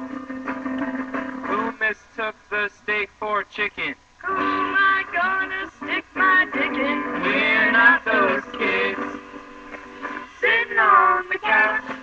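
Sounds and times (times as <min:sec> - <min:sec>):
man singing with music: 0:01.4 - 0:12.0.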